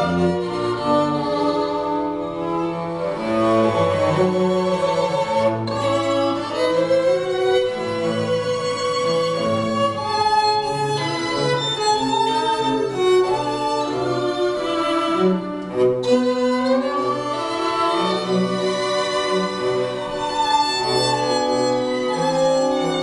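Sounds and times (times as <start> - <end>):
string quartet playing: 0.0 - 23.0.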